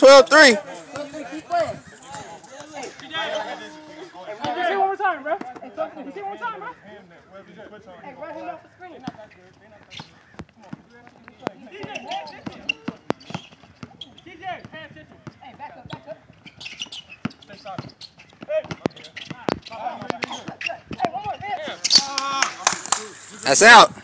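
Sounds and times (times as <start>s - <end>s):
players' voices and shouts: 0.0s - 24.0s
basketball bouncing on hard court: 9.9s - 21.6s.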